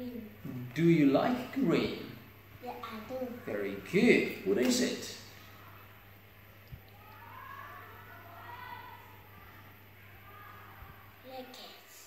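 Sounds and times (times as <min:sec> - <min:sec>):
low electrical hum: 0:00.0 - 0:12.0
faint distant siren: 0:06.9 - 0:11.1.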